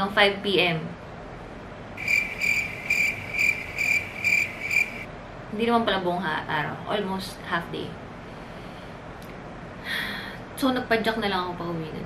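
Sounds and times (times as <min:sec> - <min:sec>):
cricket chirping: 0:02.0 - 0:05.1.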